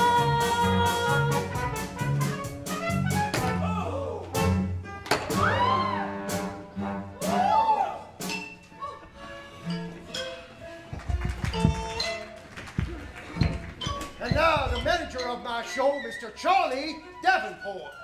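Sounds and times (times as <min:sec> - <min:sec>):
live band music: 0:00.0 - 0:08.4.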